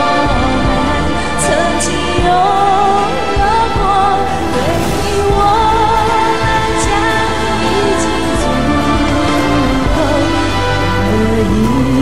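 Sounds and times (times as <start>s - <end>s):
full accompaniment with low beat: 0.0s - 12.0s
person singing a pop ballad: 0.0s - 12.0s.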